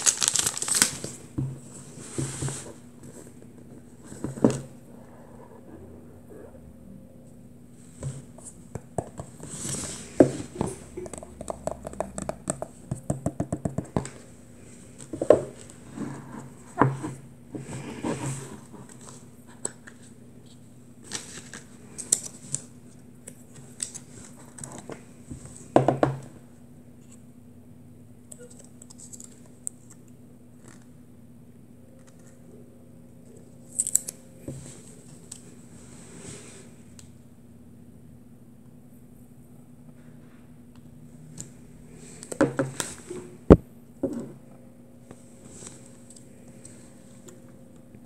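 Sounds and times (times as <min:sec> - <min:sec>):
cardboard rustling: 0:00.0 - 0:04.7.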